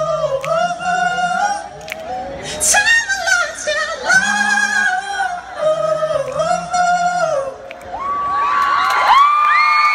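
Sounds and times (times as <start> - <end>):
live pop vocal: 0.0 - 8.4
crowd cheering and screaming: 7.8 - 9.9.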